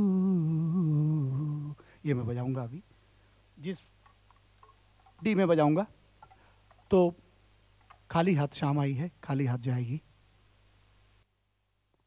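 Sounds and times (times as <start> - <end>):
man singing held note: 0.0 - 2.3.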